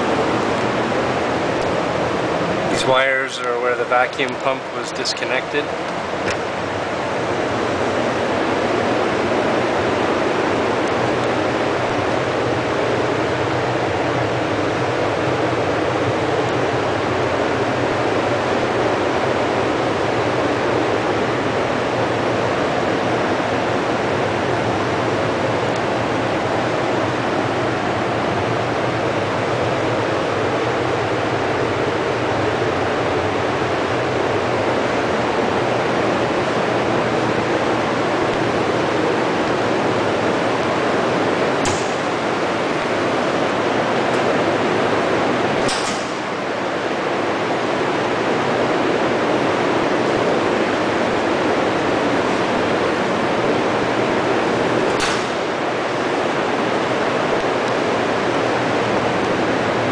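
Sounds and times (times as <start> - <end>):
industrial machinery running: 0.0 - 59.9
low hum: 0.0 - 59.9
short sharp click: 55.0 - 55.3.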